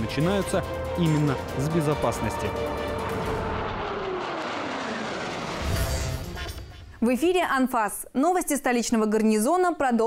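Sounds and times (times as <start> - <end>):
jets flying past: 2.0 - 7.0.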